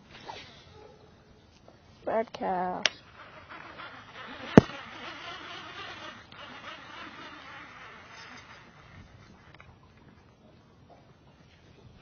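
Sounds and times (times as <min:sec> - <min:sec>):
reel spool whirring: 0:03.0 - 0:10.1.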